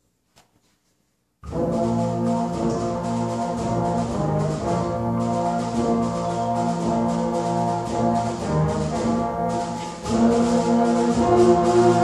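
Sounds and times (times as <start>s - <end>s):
symphonic band playing held chords: 1.4s - 12.0s.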